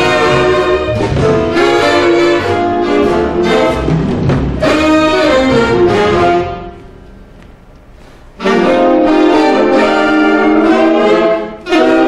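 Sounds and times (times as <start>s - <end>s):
saxophone ensemble holding chords: 0.0s - 12.0s.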